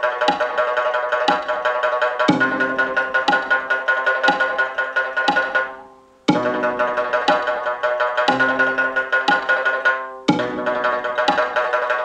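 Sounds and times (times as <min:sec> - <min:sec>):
lute played in rapid tremolo: 0:00.0 - 0:12.0.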